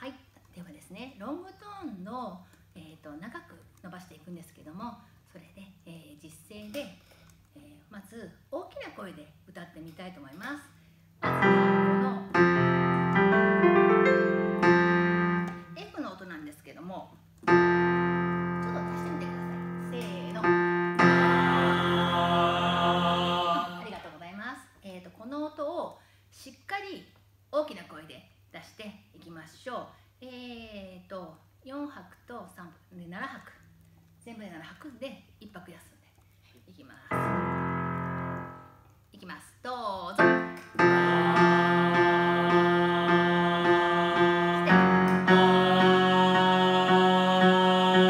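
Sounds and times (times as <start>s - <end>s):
electric piano chords: 11.2s - 15.8s, 17.4s - 23.8s, 37.1s - 38.9s, 40.2s - 48.0s
electronic keyboard sustained note: 11.2s - 15.8s, 17.5s - 23.8s, 37.1s - 38.8s, 40.2s - 48.0s
group of voices singing held tone: 20.4s - 24.0s, 40.2s - 48.0s.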